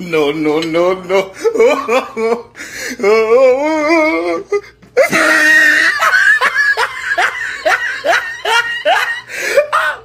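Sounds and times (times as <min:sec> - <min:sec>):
woman laughing nervously: 0:05.0 - 0:10.0.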